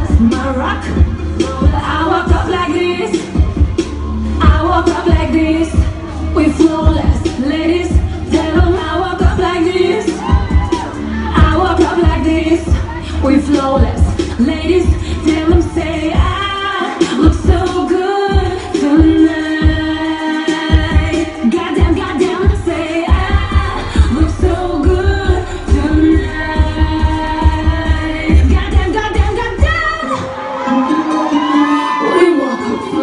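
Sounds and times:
club pop music with heavy bass: 0:00.0 - 0:33.0
person singing: 0:04.4 - 0:33.0.

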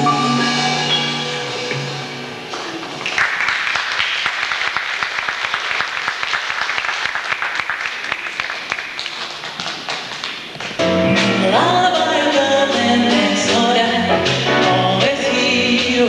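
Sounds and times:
audience applauding: 0:02.5 - 0:10.8.

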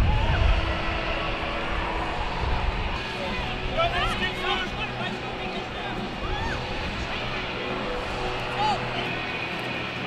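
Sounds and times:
stadium low rumble: 0:00.0 - 0:10.0.

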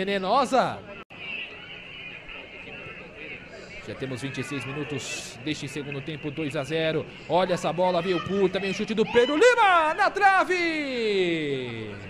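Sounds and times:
indistinct distant voices: 0:00.6 - 0:12.0
man commentating: 0:03.8 - 0:12.0.

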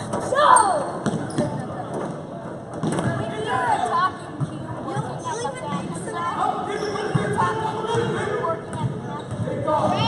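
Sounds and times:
people talking: 0:00.3 - 0:10.0
basketball bouncing on gym floor: 0:01.0 - 0:01.6, 0:08.7 - 0:10.0.

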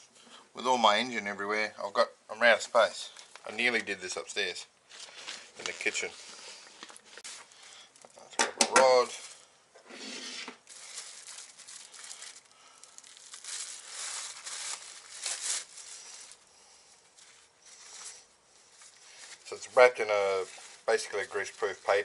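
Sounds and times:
plastic and paper crinkling: 0:04.9 - 0:08.2, 0:08.8 - 0:09.5, 0:10.6 - 0:22.0.

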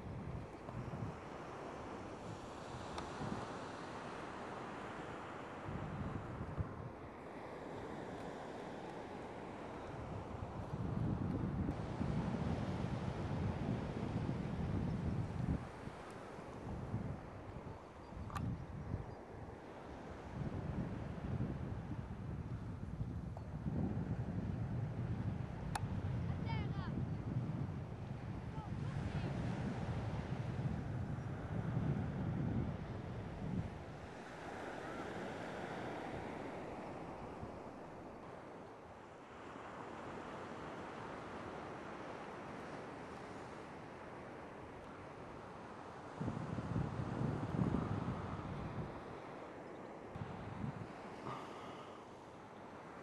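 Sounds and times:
wind buffeting microphone: 0:00.0 - 0:01.4, 0:05.6 - 0:07.0, 0:09.9 - 0:34.5, 0:45.9 - 0:49.3, 0:50.2 - 0:51.4.

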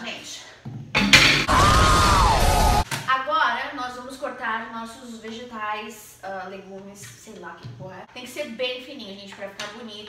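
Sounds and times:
explosion blast with falling tone: 0:01.4 - 0:02.8.

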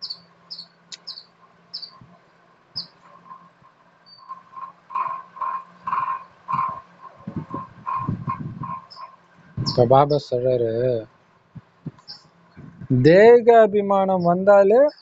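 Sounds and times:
lower repeated animal calls: 0:00.0 - 0:02.1, 0:02.8 - 0:11.1
faint steady hum: 0:00.0 - 0:15.0.

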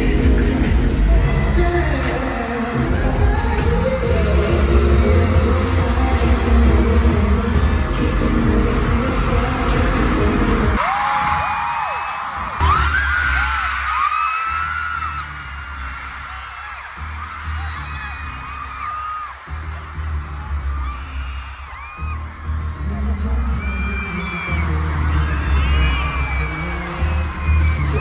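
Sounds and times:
crowd screaming and cheering: 0:00.0 - 0:28.0
loud pop music with singing: 0:00.0 - 0:28.0.

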